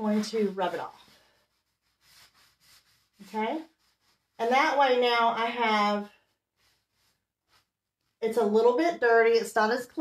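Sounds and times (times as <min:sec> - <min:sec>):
applicator pad rubbing wood: 0:00.0 - 0:04.4.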